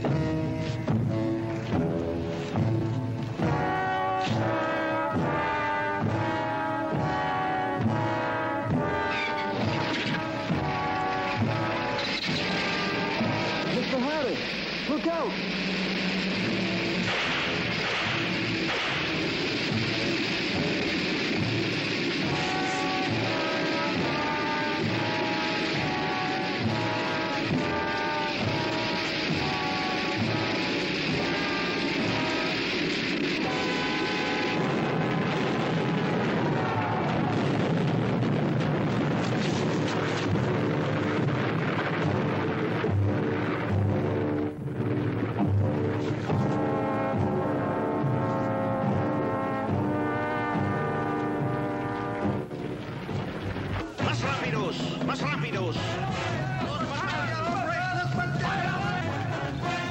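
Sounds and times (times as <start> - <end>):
dramatic orchestral music with brass: 0.0 - 59.9
steady rushing noise: 0.0 - 59.9.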